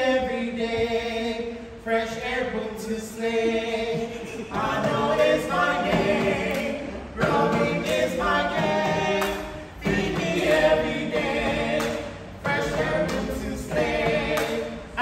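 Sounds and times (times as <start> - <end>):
vocal group singing: 0.0 - 15.0.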